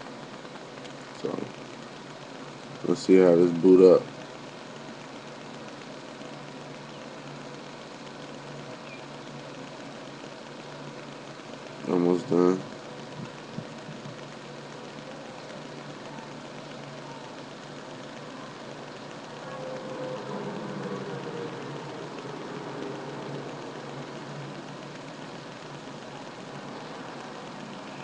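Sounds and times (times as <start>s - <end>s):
faint low hum: 0.0s - 28.0s.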